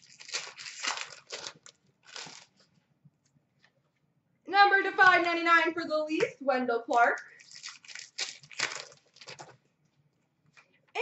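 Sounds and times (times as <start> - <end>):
trading cards rustling: 0.0 - 2.7, 6.9 - 9.6.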